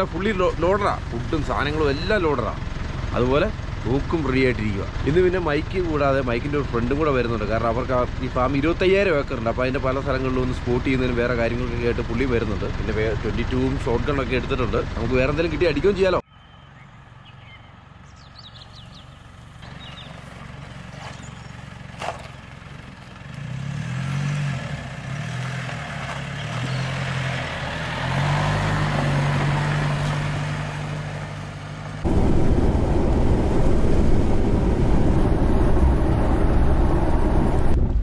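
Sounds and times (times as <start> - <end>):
road noise inside moving cab: 16.8 - 38.0
truck engine running: 17.2 - 38.0.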